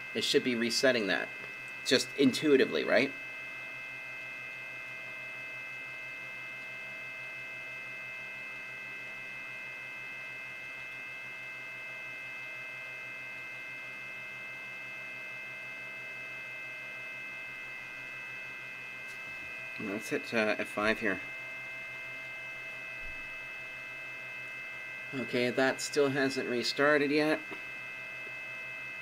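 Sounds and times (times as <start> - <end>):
electrical hum: 0.0 - 29.0
high-pitched electronic whine: 0.0 - 29.0.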